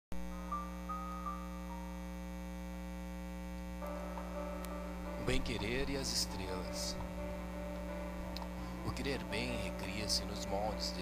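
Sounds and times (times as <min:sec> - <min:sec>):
low humming drone: 0:00.2 - 0:11.0
soft high notes: 0:03.8 - 0:11.0.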